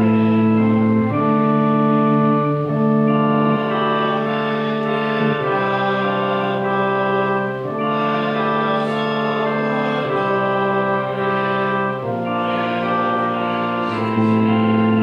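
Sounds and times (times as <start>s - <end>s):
church organ playing a hymn: 0.0s - 15.0s.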